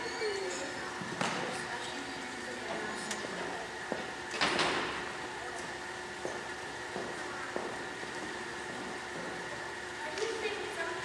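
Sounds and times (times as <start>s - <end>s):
room hum: 0.0s - 11.0s.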